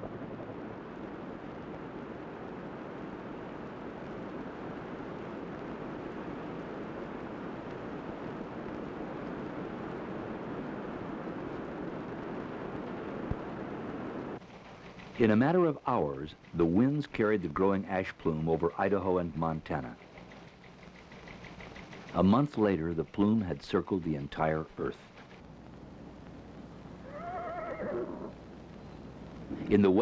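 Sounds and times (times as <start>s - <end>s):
steady rushing noise: 0.0s - 27.5s, 28.2s - 30.0s.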